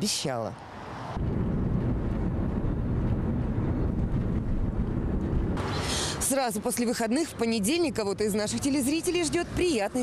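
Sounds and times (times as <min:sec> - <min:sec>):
car road noise rumble: 0:00.7 - 0:10.0
wind buffeting microphone: 0:00.7 - 0:10.0.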